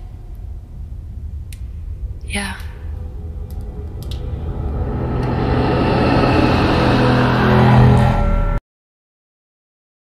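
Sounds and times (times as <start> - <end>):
dark film score drone: 0.0 - 8.6.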